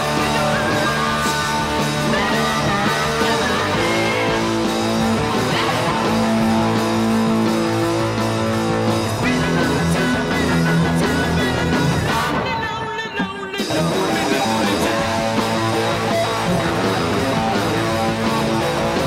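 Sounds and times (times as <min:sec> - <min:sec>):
hard-rock electric guitar: 0:00.0 - 0:19.0.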